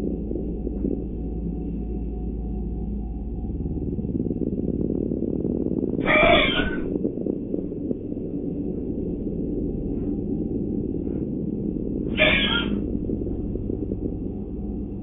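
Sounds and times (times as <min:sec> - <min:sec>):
steady low hum: 0:00.0 - 0:15.0
horse panicked cry: 0:12.2 - 0:12.8.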